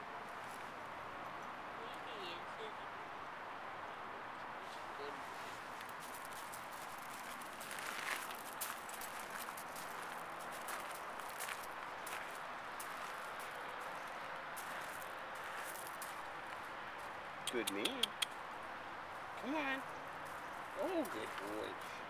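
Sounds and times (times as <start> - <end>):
footsteps on gravel: 5.4 - 17.2, 20.2 - 21.8.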